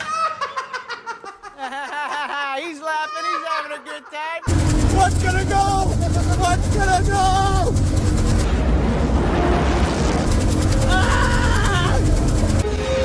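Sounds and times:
voices: 2.7 - 7.8
truck engine at high revs: 4.5 - 8.5, 10.1 - 12.6
music: 4.6 - 13.0.

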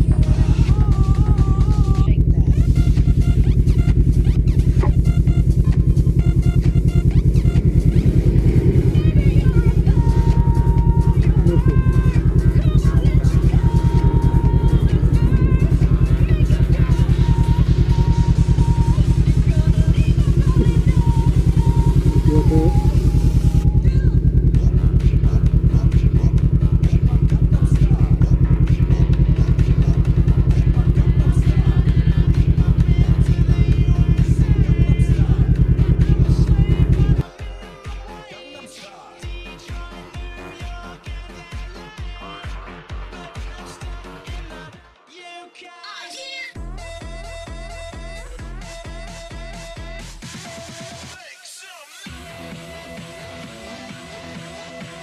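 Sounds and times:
motorcycle engine idling: 0.0 - 37.5.

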